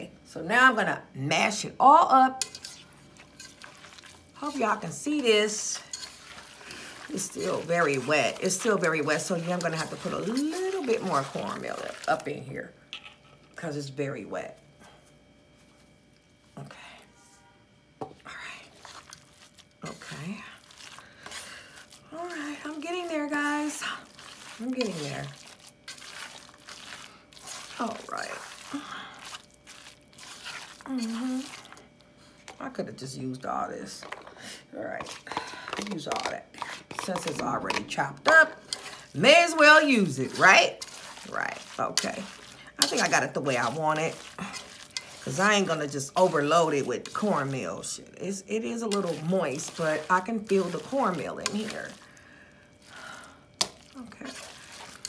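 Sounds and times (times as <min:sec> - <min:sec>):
hand squelching wet food mixture: 0:02.4 - 0:12.8, 0:18.4 - 0:32.7, 0:38.6 - 0:55.0.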